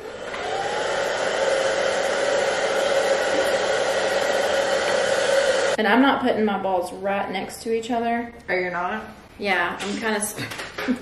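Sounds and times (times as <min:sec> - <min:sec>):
hair dryer whirring: 0:00.0 - 0:05.8.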